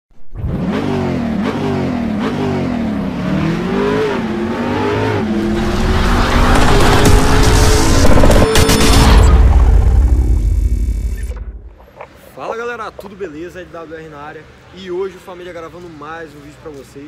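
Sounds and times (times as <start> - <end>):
car engine revving: 0.3 - 12.1
rushing noise: 3.1 - 11.9.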